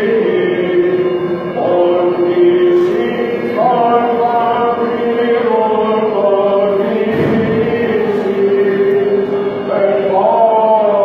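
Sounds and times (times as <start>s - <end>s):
voices chanting in echoing church: 0.0s - 11.0s.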